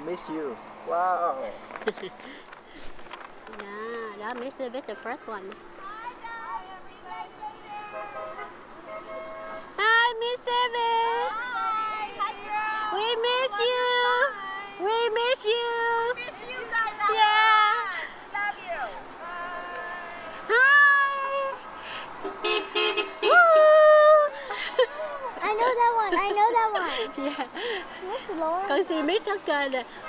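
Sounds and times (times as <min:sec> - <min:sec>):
car horn honking: 0:07.7 - 0:10.1, 0:22.2 - 0:23.4
short car horn toots: 0:22.2 - 0:23.3.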